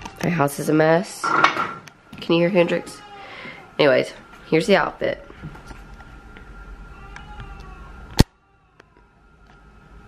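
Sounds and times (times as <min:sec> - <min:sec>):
low room hum: 0:00.0 - 0:10.0
toddler wailing: 0:02.7 - 0:03.7, 0:06.9 - 0:09.2.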